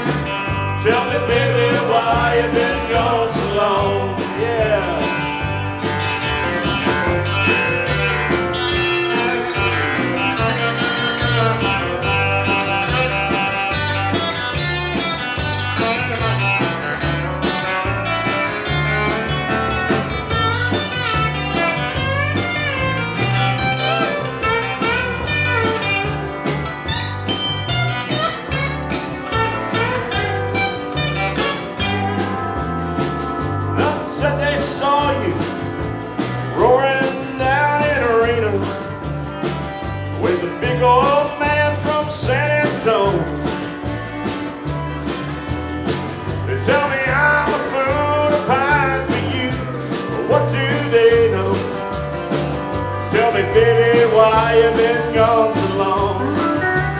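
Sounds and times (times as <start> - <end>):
live country band playing: 0.0 - 56.9
pedal steel guitar sliding: 5.2 - 33.9.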